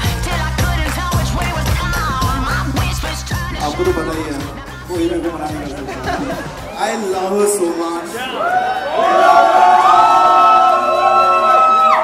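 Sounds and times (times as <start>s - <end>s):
amplified background music: 0.0s - 12.0s
man speaking into a microphone: 3.5s - 8.4s.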